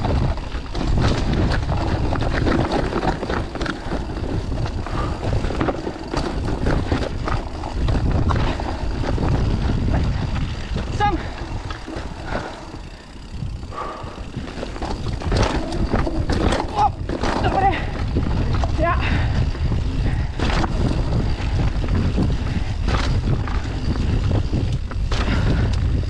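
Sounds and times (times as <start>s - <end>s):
bike rattling over bumps: 0.0s - 26.0s
bike tyres rumbling over dirt: 0.0s - 26.0s.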